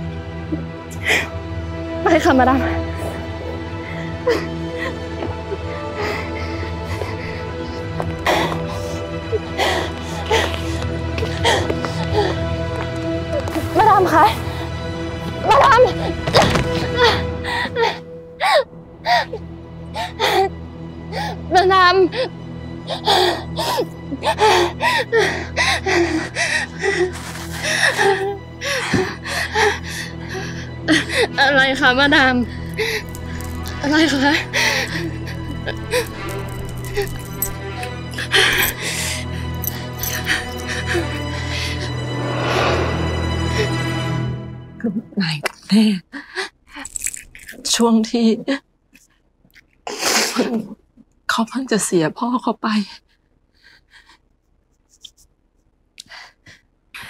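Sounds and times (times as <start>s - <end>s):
low background music: 0.0s - 48.6s
woman coughing: 50.0s - 50.8s.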